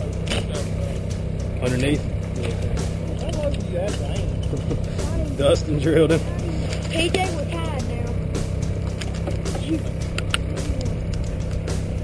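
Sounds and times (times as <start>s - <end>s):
boat motor hum: 0.0s - 12.0s.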